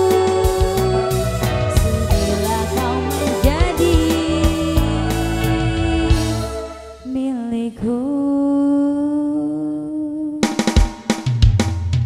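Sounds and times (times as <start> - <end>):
drum fill: 0.0 - 7.2, 10.4 - 12.0
woman singing long note: 0.0 - 10.4.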